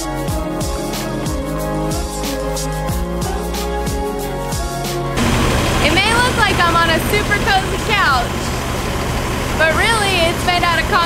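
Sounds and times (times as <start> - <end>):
vehicle engine idling: 5.2 - 11.0
person talking: 5.8 - 8.5, 9.6 - 11.0.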